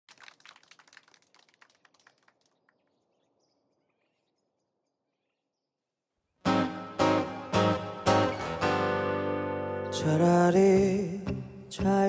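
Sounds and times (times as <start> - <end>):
bird chirping: 2.5 - 6.0.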